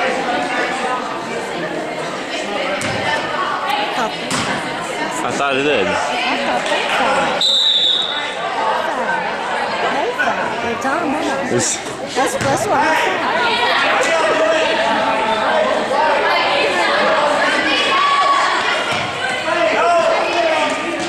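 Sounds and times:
echoing chatter of people: 0:00.0 - 0:21.0
basketball bouncing: 0:02.8 - 0:03.1
referee's whistle: 0:07.4 - 0:08.4.

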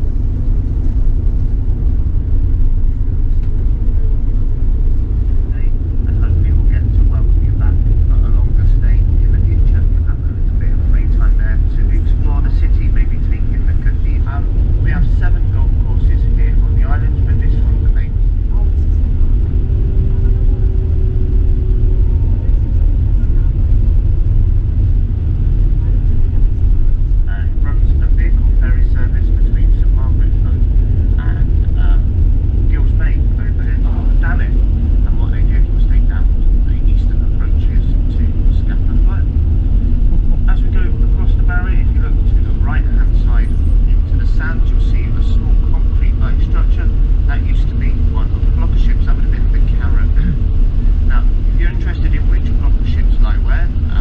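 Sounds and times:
road rumble inside vehicle: 0:00.0 - 0:54.0
indistinct voices: 0:01.3 - 0:54.0.

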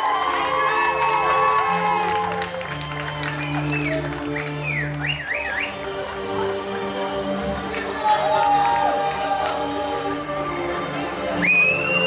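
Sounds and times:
dance music: 0:00.0 - 0:12.0
person whistling high glides: 0:03.0 - 0:05.9, 0:11.4 - 0:12.0.

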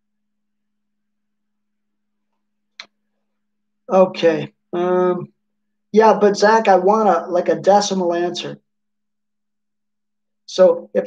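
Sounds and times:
man's voice: 0:06.0 - 0:08.6.

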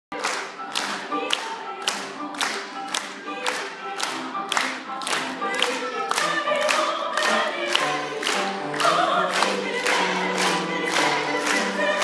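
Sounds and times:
audience clapping along: 0:00.1 - 0:12.0
live singing with accompaniment: 0:00.1 - 0:12.0.

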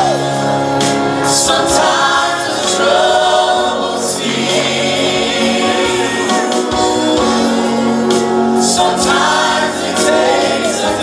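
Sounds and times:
band accompaniment: 0:00.0 - 0:11.0
group singing gospel: 0:00.0 - 0:11.0.

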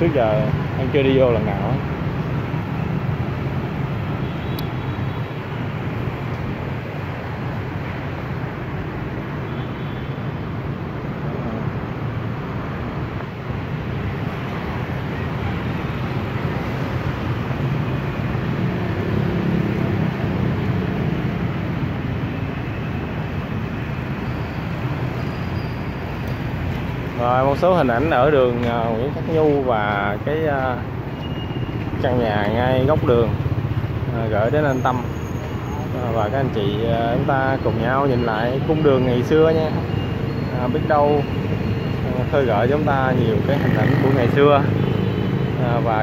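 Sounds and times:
motorbikes passing: 0:00.0 - 0:09.5, 0:10.2 - 0:46.0
city street traffic: 0:00.0 - 0:46.0.

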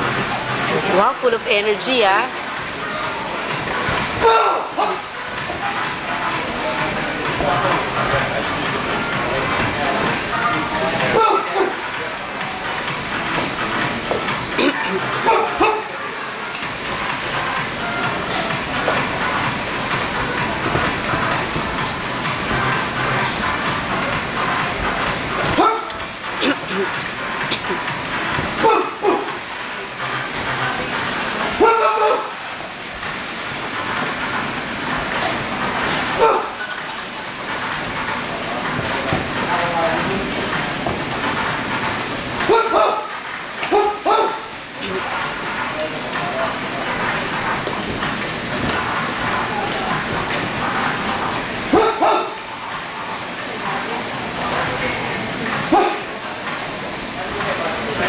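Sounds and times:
chatter of many voices: 0:00.0 - 0:33.0, 0:33.6 - 0:58.0
background music: 0:00.0 - 0:58.0
steady noise bed: 0:00.0 - 0:58.0.

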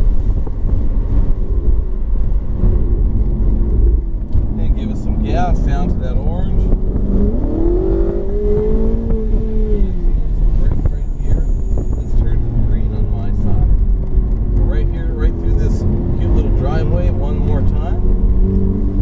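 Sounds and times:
car engine accelerating: 0:00.0 - 0:19.0
road and wind rumble: 0:00.0 - 0:19.0.

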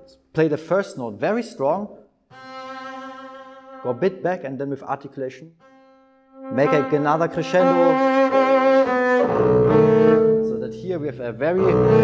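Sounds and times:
double bass bowed note: 0:05.6 - 0:12.0.

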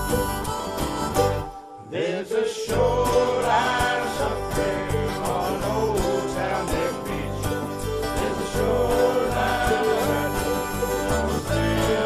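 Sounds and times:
plucked acoustic guitar: 0:00.0 - 0:12.0
person singing: 0:01.4 - 0:12.0.

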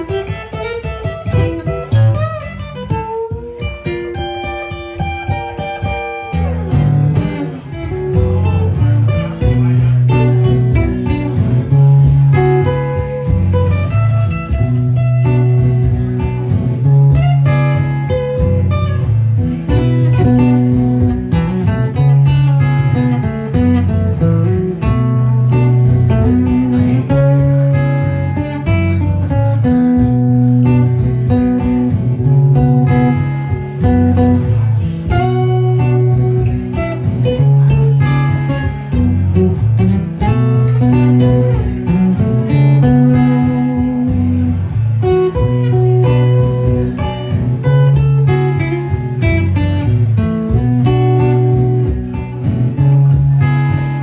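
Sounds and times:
acoustic guitar bluesy riff: 0:00.0 - 0:54.0.

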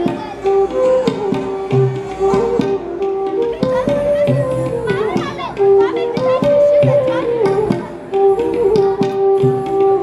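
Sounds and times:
bamboo flute long held notes: 0:00.0 - 0:10.0
tabla strokes: 0:00.0 - 0:10.0.

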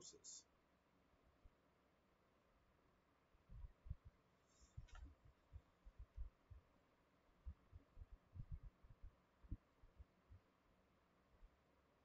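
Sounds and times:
faint low thumps: 0:03.5 - 0:04.2, 0:04.8 - 0:06.7, 0:07.4 - 0:10.5.

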